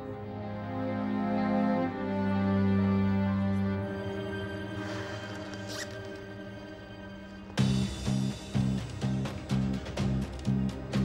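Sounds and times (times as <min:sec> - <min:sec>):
sad soundtrack music: 0:00.0 - 0:11.0
handbag zipper opening: 0:04.8 - 0:06.2.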